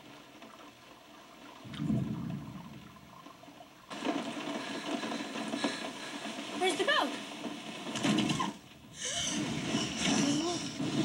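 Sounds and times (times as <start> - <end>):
rain hissing on car: 2.2 - 11.0.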